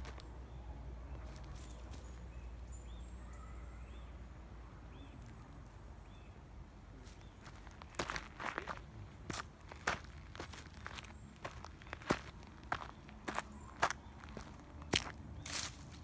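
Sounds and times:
footsteps on gravel and leaves: 0:00.0 - 0:00.3, 0:07.0 - 0:16.0.

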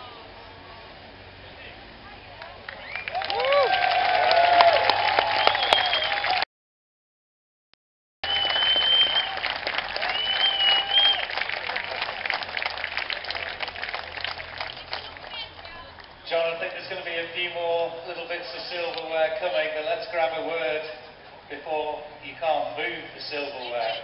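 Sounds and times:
crowd applauding: 0:02.4 - 0:06.5, 0:08.2 - 0:15.9
crowd whooping: 0:02.7 - 0:06.4, 0:08.2 - 0:14.8
high whistles: 0:05.3 - 0:06.4, 0:08.2 - 0:09.4, 0:10.0 - 0:11.3.

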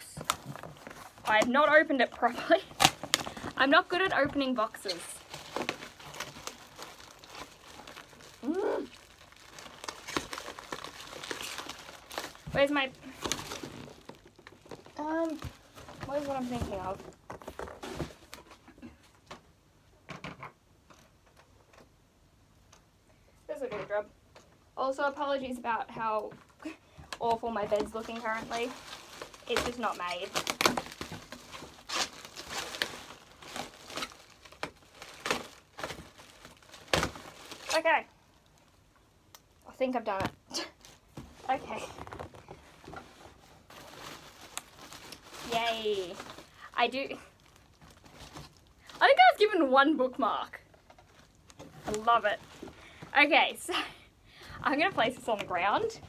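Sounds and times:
cardboard box rustling and crinkling: 0:00.0 - 0:18.6, 0:27.2 - 0:38.1, 0:40.8 - 0:49.5, 0:50.7 - 0:53.3.

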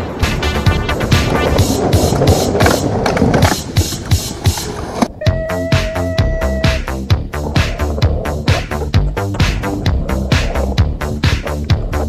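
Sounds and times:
skateboard wheels rolling on asphalt: 0:00.0 - 0:12.0
music with a steady beat: 0:05.3 - 0:12.0.

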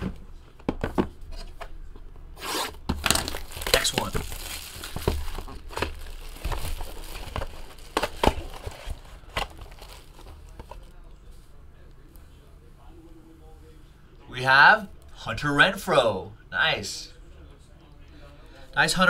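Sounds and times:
plastic shrink-wrap crinkling: 0:02.4 - 0:11.0.

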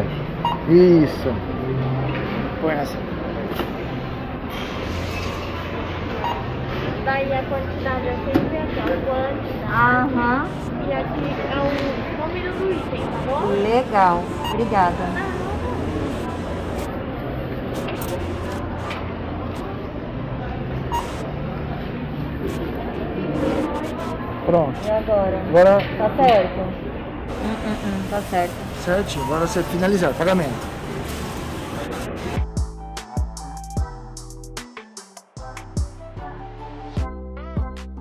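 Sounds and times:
barcode scanner beep: 0:00.4 - 0:00.7, 0:06.2 - 0:06.6, 0:14.0 - 0:15.2, 0:20.9 - 0:21.2, 0:29.0 - 0:30.0.

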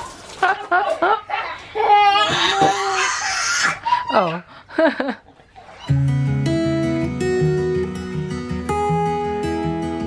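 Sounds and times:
woman exclaiming and laughing: 0:03.8 - 0:04.5.

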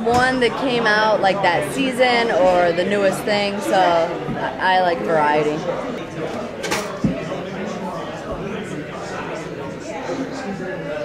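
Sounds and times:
bar chatter: 0:00.0 - 0:11.0.

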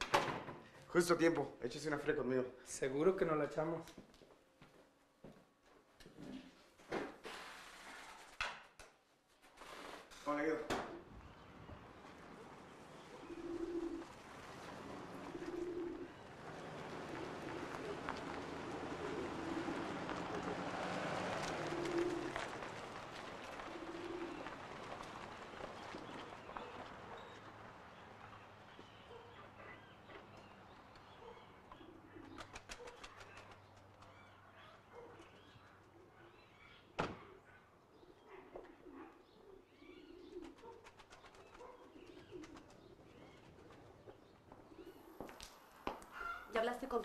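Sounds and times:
pigeons cooing: 0:10.8 - 0:45.3.

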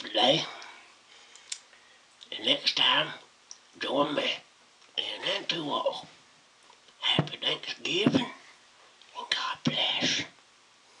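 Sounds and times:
man whispering: 0:00.0 - 0:00.8, 0:02.2 - 0:06.1, 0:07.0 - 0:08.5, 0:09.1 - 0:10.4.

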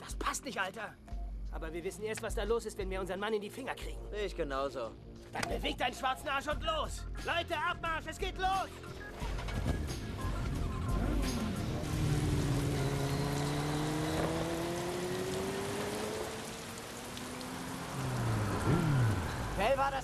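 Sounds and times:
background music: 0:00.0 - 0:16.4
motorcycle engines: 0:09.4 - 0:20.0.

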